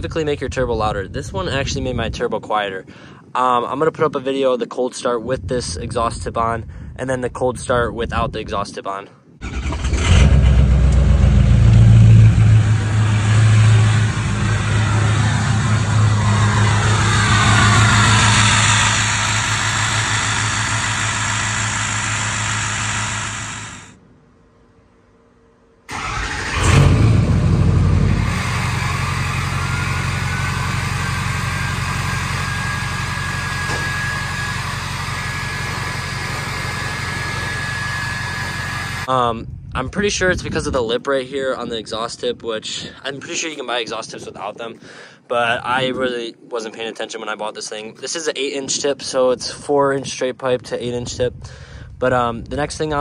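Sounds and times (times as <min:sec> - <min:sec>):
diesel engine starting and idling: 0:09.4 - 0:24.0, 0:25.9 - 0:39.1
turbo whistle: 0:12.8 - 0:23.9, 0:28.2 - 0:39.1.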